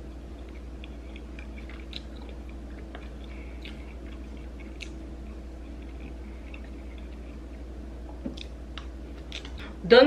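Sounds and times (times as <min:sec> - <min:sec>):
person chewing noodles: 0:00.0 - 0:09.6
low steady hum: 0:00.0 - 0:10.0
wet mouth clicks: 0:08.2 - 0:09.6.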